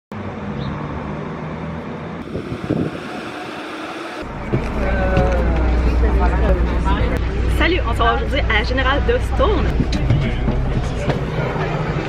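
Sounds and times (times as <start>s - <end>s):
diesel bus engine idling: 2.2s - 12.0s.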